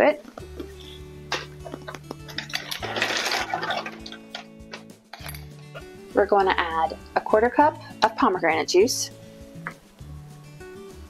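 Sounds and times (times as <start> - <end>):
background music: 0.0 - 11.0
ice clinking into glass: 2.3 - 4.5
ice cubes rattling in plastic container: 2.3 - 4.5.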